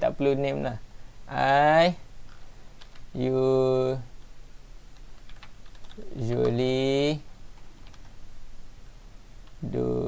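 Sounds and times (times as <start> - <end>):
computer keyboard typing: 2.8 - 3.1, 5.0 - 6.6, 7.8 - 8.1.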